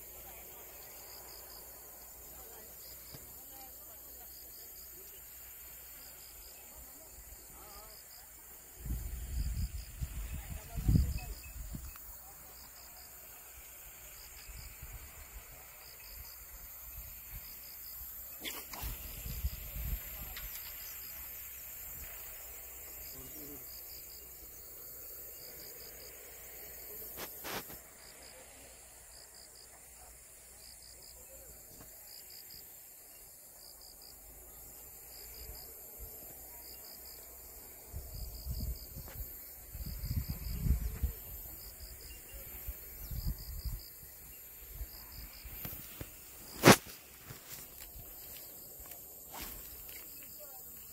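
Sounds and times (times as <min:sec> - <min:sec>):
insect chirping: 0:00.0 - 0:50.9
steady high hiss: 0:00.0 - 0:50.9.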